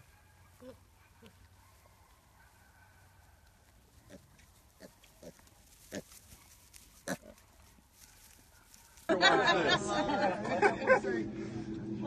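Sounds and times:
pigs calling: 4.0 - 6.2, 7.0 - 7.4.

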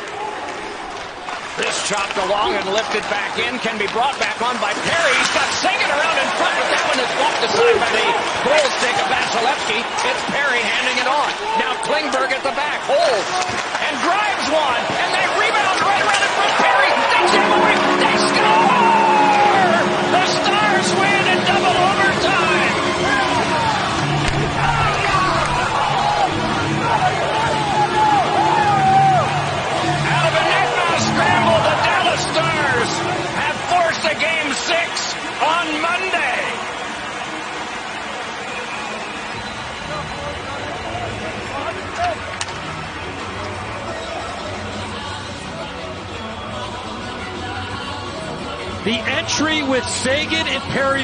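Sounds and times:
players shouting and whooping: 4.8 - 36.7
music: 13.3 - 51.0.

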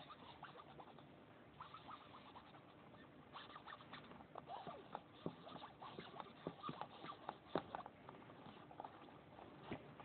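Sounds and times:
needle and thread stitching leather: 4.5 - 9.9.

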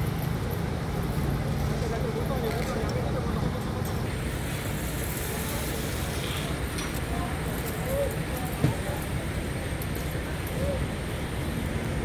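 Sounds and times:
lorry engines idling: 0.0 - 12.0
voices talking: 1.6 - 12.0.

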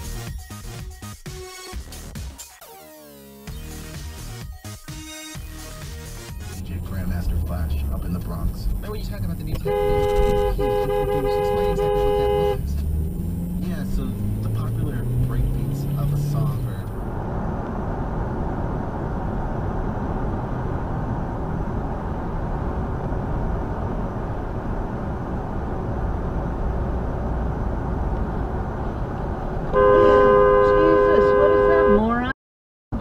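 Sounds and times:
car road and engine noise: 3.0 - 33.0
car horn held: 9.6 - 12.7, 29.7 - 31.9.

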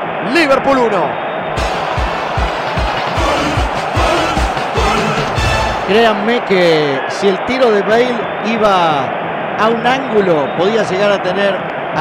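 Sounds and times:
loud music with fast beat: 1.6 - 6.1.

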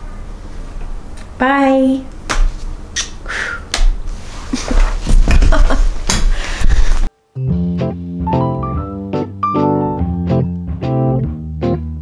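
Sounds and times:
music: 7.2 - 12.0.

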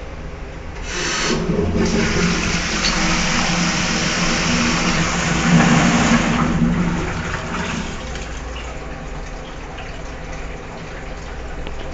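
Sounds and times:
toilet cistern flushing: 0.8 - 11.9.

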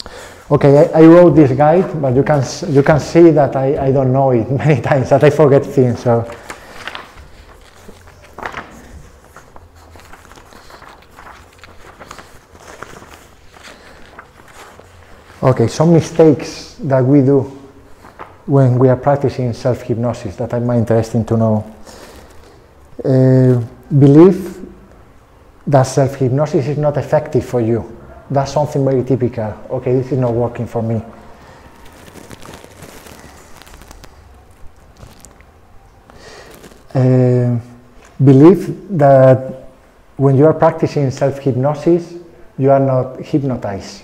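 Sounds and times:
paper sheets rustling: 0.1 - 22.8, 28.6 - 37.0.

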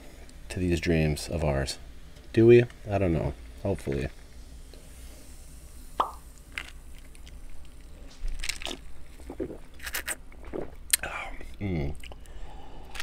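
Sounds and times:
sipping and gulping soda: 4.8 - 13.0
wet mouth plops: 6.0 - 6.2.

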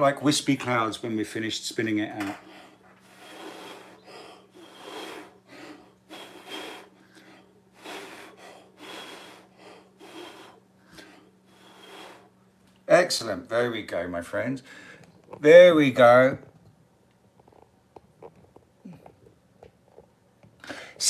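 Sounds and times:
person blowing breathy puffs: 2.4 - 12.4
quick breaths in: 2.4 - 12.4.

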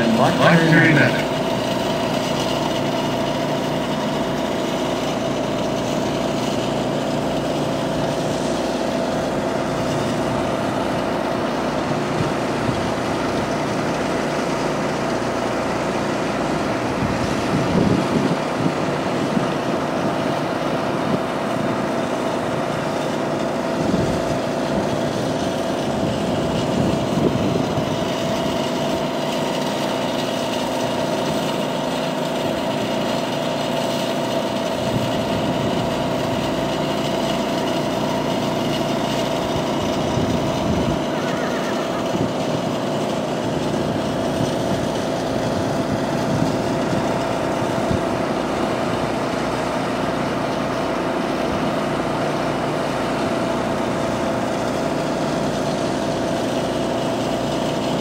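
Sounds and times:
steady mechanical drone: 0.0 - 58.0.

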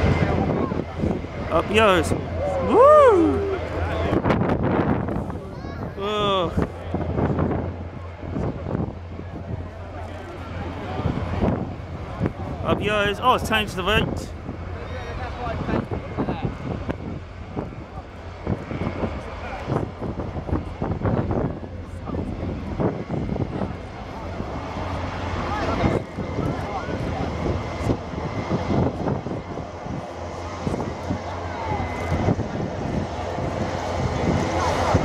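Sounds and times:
jet airliner flying past: 0.0 - 35.0.

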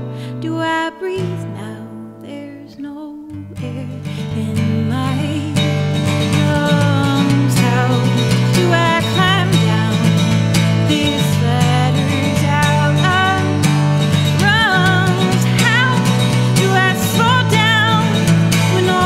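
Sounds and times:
strummed acoustic guitar: 0.0 - 19.0
woman singing with vibrato: 0.0 - 19.0.

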